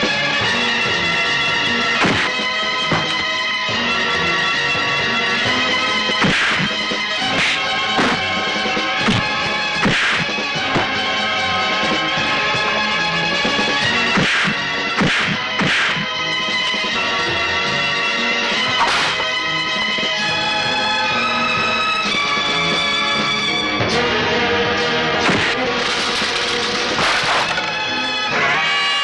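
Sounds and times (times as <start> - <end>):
film background music: 0.0 - 29.0
punch sound effects: 2.0 - 2.4, 6.2 - 8.3, 9.0 - 10.9, 14.2 - 16.1, 18.8 - 19.3, 25.2 - 25.6.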